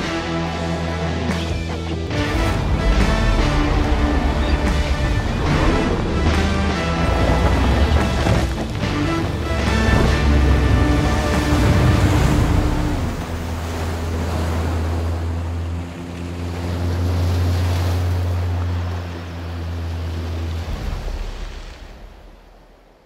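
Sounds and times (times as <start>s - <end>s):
rushing water spray: 2.2s - 22.3s.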